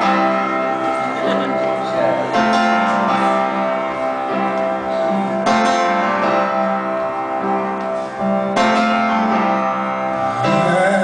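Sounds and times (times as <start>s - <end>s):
piano playing sustained chords: 0.0s - 11.0s.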